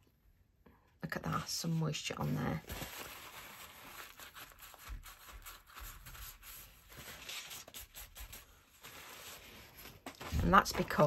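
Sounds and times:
tissue rubbing on card: 3.2 - 11.0.

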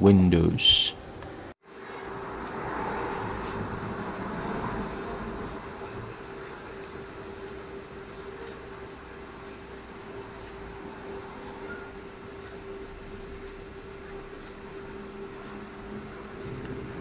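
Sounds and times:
constant mid-pitched tone: 0.0 - 17.0
mechanical hum and hiss: 0.0 - 17.0.

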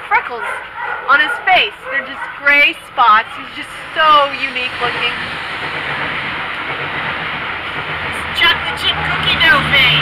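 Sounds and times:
steady rushing noise: 2.7 - 10.0.

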